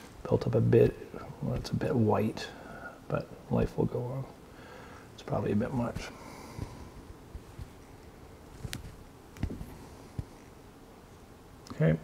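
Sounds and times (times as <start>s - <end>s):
quiet background noise: 0.0s - 12.0s
soft taps and clicks of handling: 5.9s - 10.5s.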